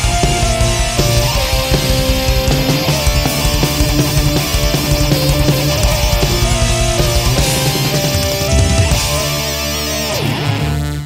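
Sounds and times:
distorted guitar and bass chord: 0.0s - 11.0s.

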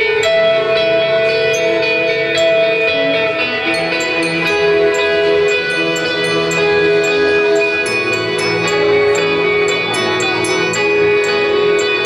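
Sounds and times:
electric guitars: 0.0s - 12.0s.

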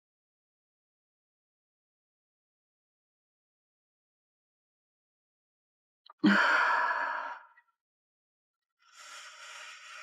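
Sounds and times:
woman sighing: 6.2s - 7.4s.

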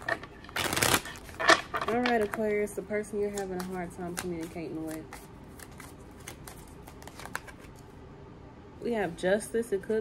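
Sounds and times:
cards being shuffled: 0.1s - 2.4s, 3.2s - 7.9s.

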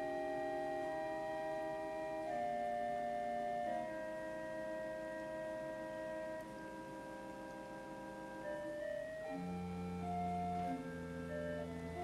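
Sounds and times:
church organ chord: 0.0s - 12.0s.

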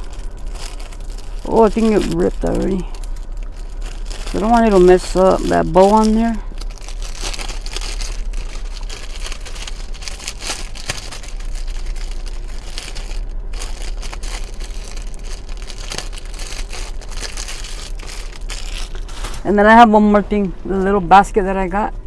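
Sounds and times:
plastic packaging crinkling: 0.0s - 19.6s.

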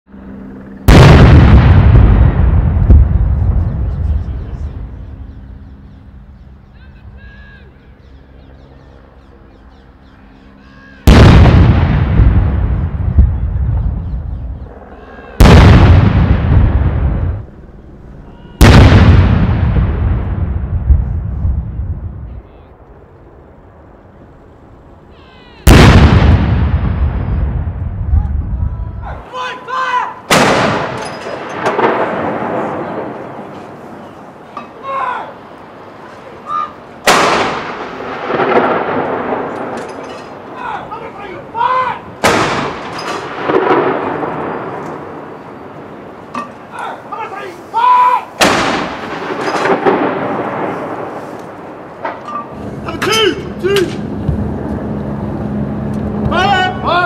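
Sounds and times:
artillery gun booms: 0.9s - 4.3s, 11.0s - 14.4s, 15.4s - 17.4s, 18.6s - 22.2s, 25.7s - 28.2s, 30.3s - 33.5s, 37.0s - 40.4s, 42.2s - 45.1s, 48.4s - 51.2s.

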